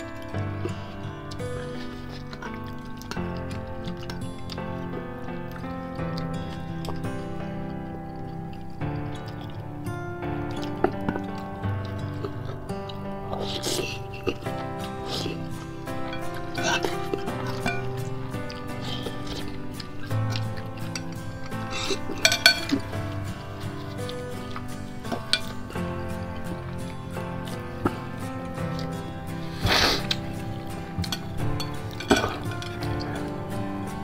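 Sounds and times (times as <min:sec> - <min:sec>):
noodles slurped: 0:00.0 - 0:09.6, 0:10.4 - 0:34.0
background music: 0:00.0 - 0:34.0
utensils clinking on glass bowl: 0:15.2 - 0:27.6, 0:30.0 - 0:34.0.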